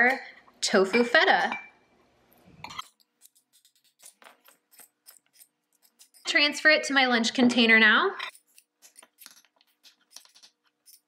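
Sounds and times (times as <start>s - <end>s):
metal spoon scraping glass bowl: 8.2s - 11.0s.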